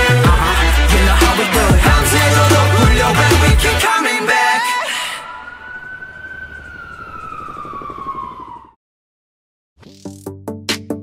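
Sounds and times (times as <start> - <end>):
siren wailing tone: 4.6 - 8.8.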